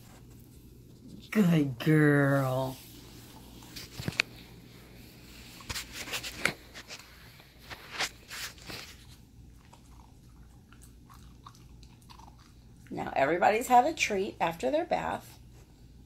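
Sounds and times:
puppy crunching dog treat: 7.7s - 13.0s.

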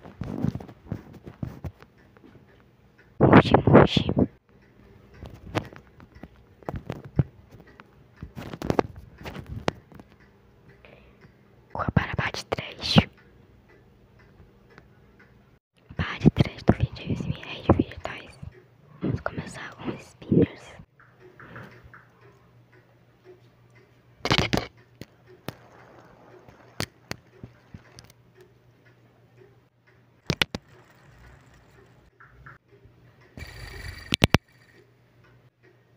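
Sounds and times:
soft whispering: 3.2s - 4.4s, 10.8s - 13.2s, 15.8s - 20.9s
fidget toys tapping and crinkling: 5.1s - 10.3s, 16.5s - 18.5s, 24.3s - 28.2s, 30.2s - 32.7s.

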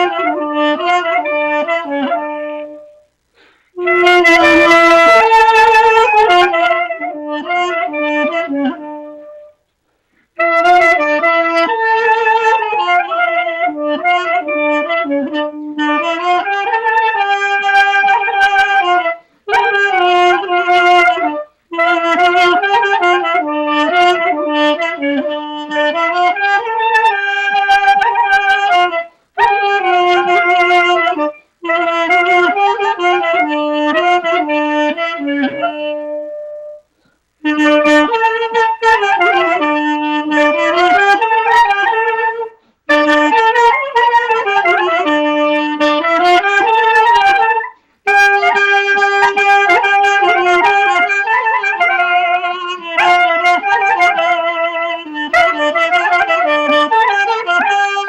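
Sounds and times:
duduk and clarinet melody: 0.0s - 9.6s, 10.2s - 58.0s.

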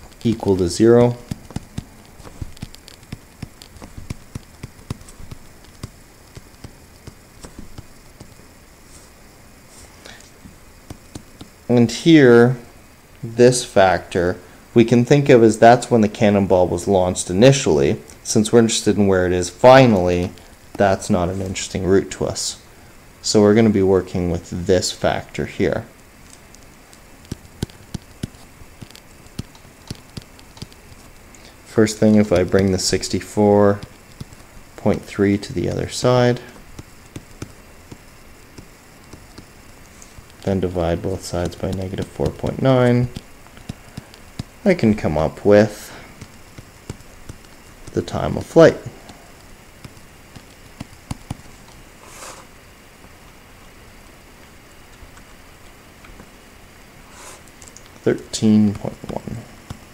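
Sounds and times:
stylus tapping on tablet screen: 0.1s - 8.4s, 10.8s - 11.5s, 26.4s - 31.2s, 32.1s - 35.1s, 36.5s - 40.6s, 41.2s - 44.6s, 46.2s - 51.8s.

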